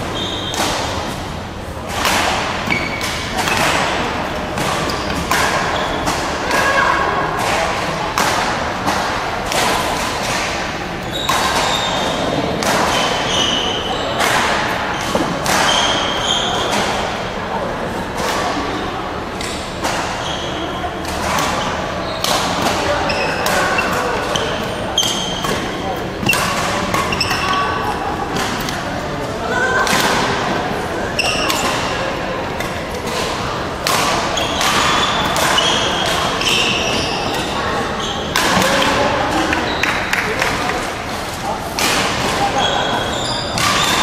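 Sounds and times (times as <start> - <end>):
voices chattering: 0.0 - 44.0
racket hitting shuttlecock: 0.3 - 1.2, 1.8 - 6.7, 7.3 - 13.4, 14.2 - 17.0, 21.0 - 29.0, 29.8 - 37.6, 38.3 - 42.5, 43.4 - 44.0.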